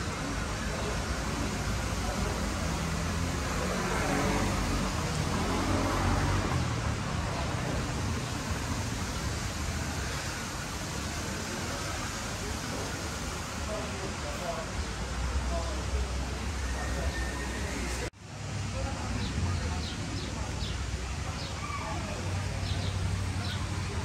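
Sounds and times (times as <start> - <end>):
faint voices: 0.0 - 24.0.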